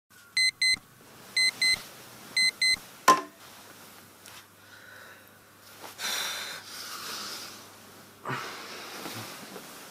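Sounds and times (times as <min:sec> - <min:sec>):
alarm clock beeping: 0:00.4 - 0:00.8, 0:01.4 - 0:01.8, 0:02.4 - 0:02.8.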